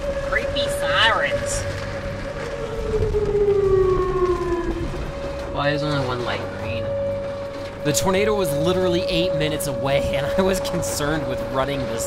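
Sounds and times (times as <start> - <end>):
tornado warning siren wailing: 0.0 - 12.0.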